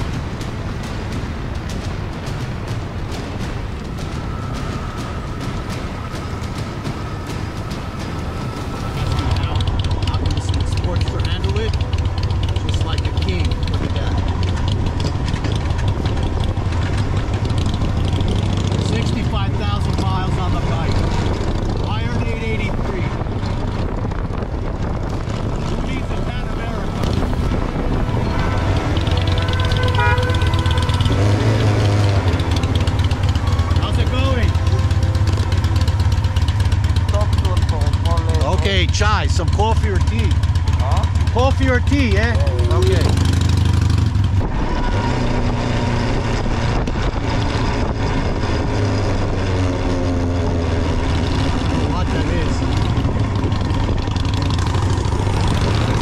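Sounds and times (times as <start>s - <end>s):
motorcycle engine running: 0.0s - 56.0s
wind and road noise: 0.0s - 56.0s
voices: 3.9s - 15.5s, 18.4s - 23.4s, 25.6s - 43.6s.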